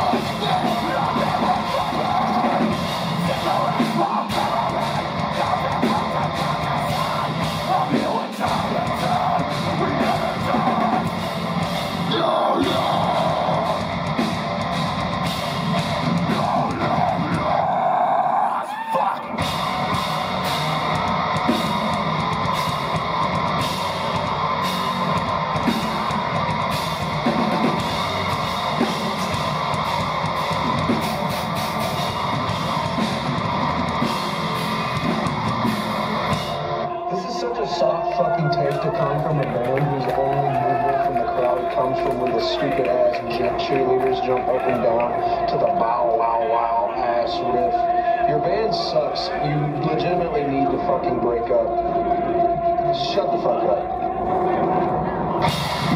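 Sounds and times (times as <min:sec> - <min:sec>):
pounding drums: 0:00.0 - 0:18.1, 0:19.3 - 0:36.8
distorted guitars: 0:00.0 - 0:55.9
metal band playing live: 0:00.0 - 0:55.9
screamed vocals: 0:00.0 - 0:55.9.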